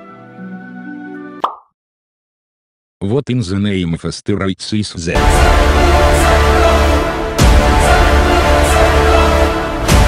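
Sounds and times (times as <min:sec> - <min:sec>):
cartoon plop: 0:01.4 - 0:01.7.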